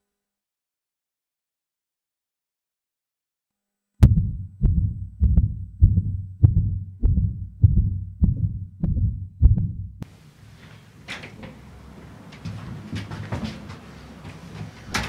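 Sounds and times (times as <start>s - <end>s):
heartbeat thumps: 4.0s - 10.0s
faint room hiss: 10.0s - 12.9s.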